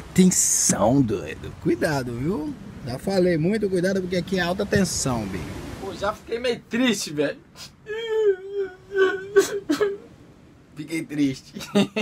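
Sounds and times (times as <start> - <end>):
man whimpering and sobbing: 7.5 - 10.2.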